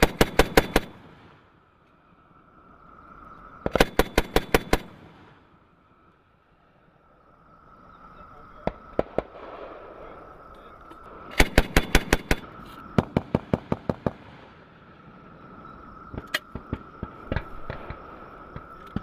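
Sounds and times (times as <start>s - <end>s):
machine gun firing in bursts: 0.0s - 1.2s, 3.7s - 5.0s, 11.4s - 14.3s.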